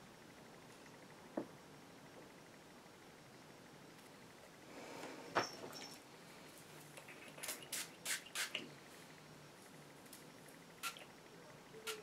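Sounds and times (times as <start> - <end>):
spray bottle spritzes: 7.4 - 8.6, 10.8 - 11.0.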